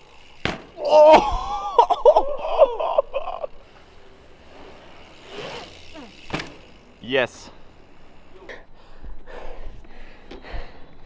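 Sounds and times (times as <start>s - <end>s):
bike landing thud on concrete: 0.3s - 0.8s, 5.2s - 6.9s
man shouting: 0.8s - 1.4s.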